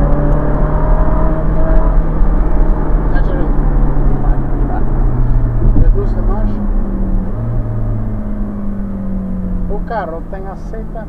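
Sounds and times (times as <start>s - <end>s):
wind noise: 0.0s - 8.9s
car engine running: 0.0s - 11.0s.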